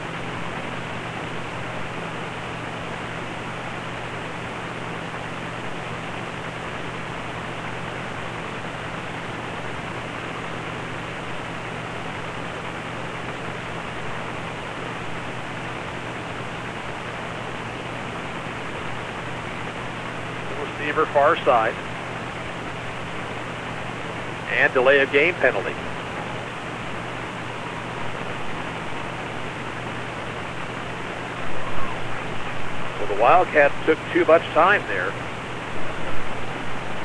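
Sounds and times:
hiss-like background noise: 0.0 - 37.0
low hum: 0.0 - 37.0.

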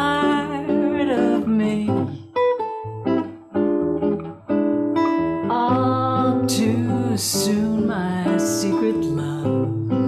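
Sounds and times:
person singing jazz ballad: 0.0 - 2.4, 5.4 - 10.0
classical guitar plucked chords: 0.0 - 10.0.

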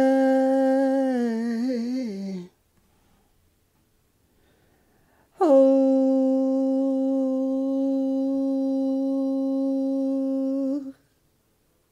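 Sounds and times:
person humming one note: 5.4 - 11.0.

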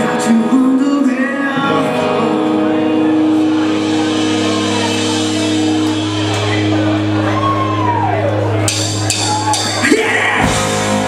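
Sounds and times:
bass notes ringing: 0.0 - 11.0
distorted electric guitar chord: 1.5 - 9.1.

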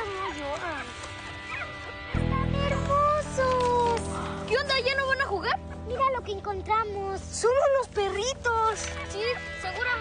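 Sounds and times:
puppies whimpering: 0.0 - 2.1
sustained music chord: 0.0 - 10.0.

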